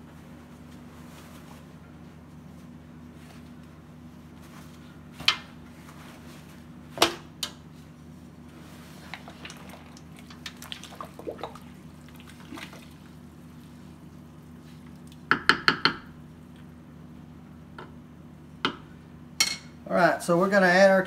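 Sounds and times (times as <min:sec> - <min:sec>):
steady low hum: 0:00.0 - 0:21.0
water splashing and sloshing: 0:08.5 - 0:15.3
spatula knocking against pot: 0:15.3 - 0:16.1.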